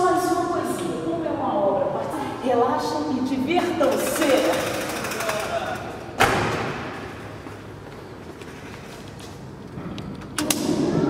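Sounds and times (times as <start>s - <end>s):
voices: 0.0s - 6.3s
fast rattling: 3.8s - 5.9s.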